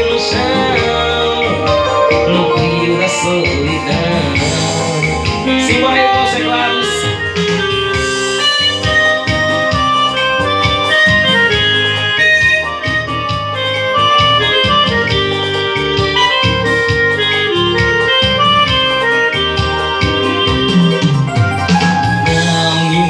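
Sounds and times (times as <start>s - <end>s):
electronic keyboard melody: 0.0s - 23.0s
steady electronic beat: 0.0s - 23.0s.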